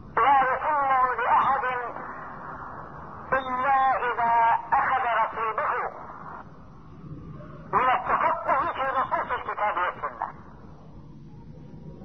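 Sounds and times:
man speaking over telephone: 0.2 - 2.2, 3.3 - 6.4, 7.7 - 10.4.

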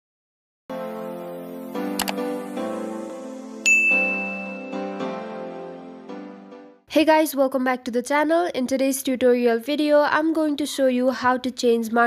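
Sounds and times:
background music: 0.7 - 6.9
click: 2.0 - 2.2
bell-like notification ding: 3.6 - 5.0.

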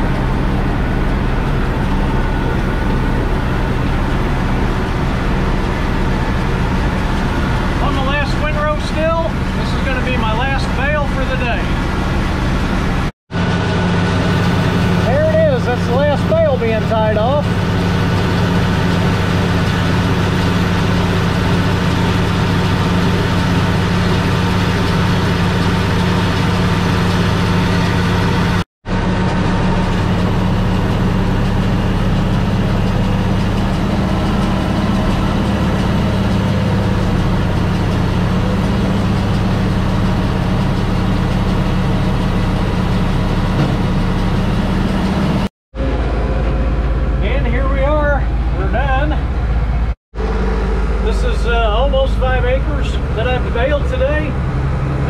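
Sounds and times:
tractor diesel engine running: 0.0 - 55.0.

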